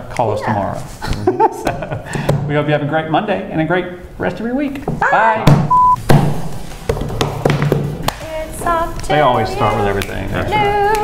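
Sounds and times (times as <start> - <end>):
hand claps: 7.2 - 8.2.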